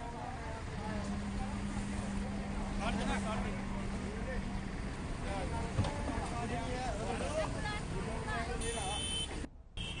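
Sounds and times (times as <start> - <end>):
people talking: 0.0 - 4.6, 5.2 - 9.5
road traffic rumble: 0.0 - 10.0.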